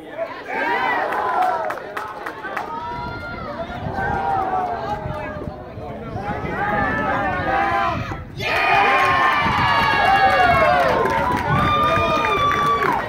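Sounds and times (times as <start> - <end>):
crowd cheering and yelling: 0.0 - 13.0.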